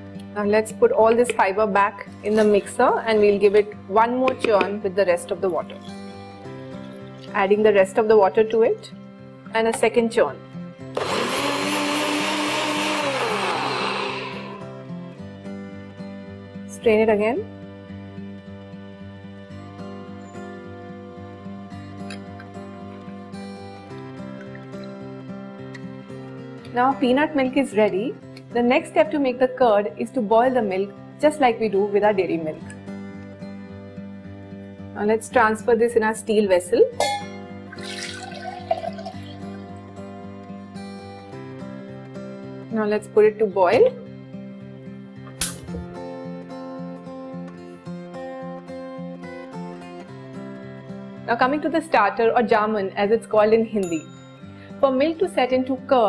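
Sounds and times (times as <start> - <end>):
background music: 0.0 - 56.0
blender motor running: 11.0 - 14.8
milk pouring into steel vessel: 37.7 - 39.8.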